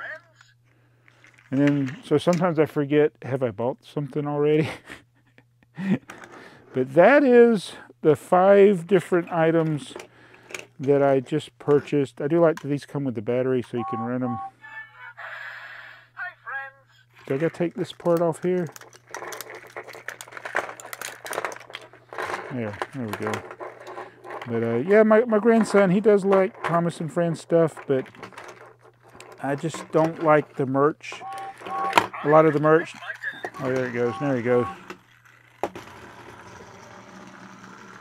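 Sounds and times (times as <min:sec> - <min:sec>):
thin plastic crinkling: 0:17.2 - 0:24.2.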